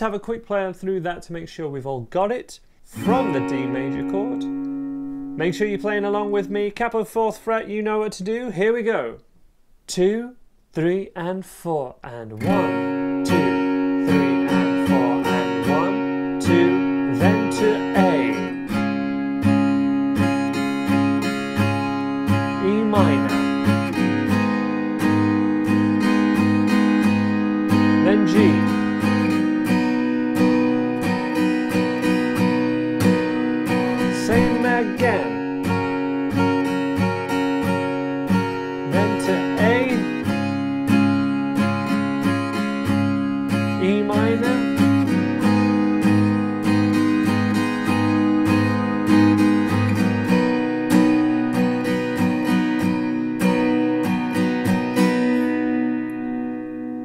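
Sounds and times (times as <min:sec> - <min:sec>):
acoustic guitar strumming: 0:02.7 - 0:09.6, 0:12.1 - 0:57.0.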